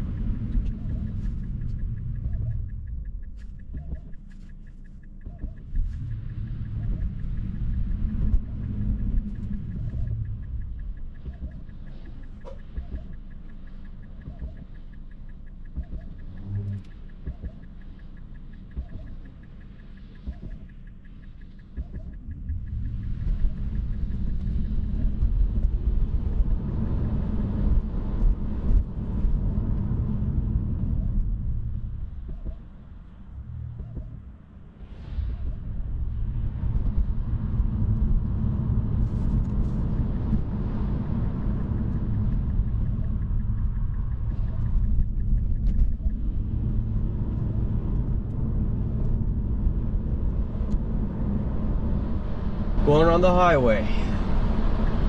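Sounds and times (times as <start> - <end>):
road and tyre rumble in car: 0.0 - 55.0.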